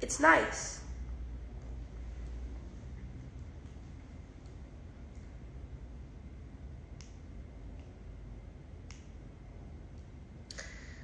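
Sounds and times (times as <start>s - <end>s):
faint low background rumble: 0.0s - 11.0s.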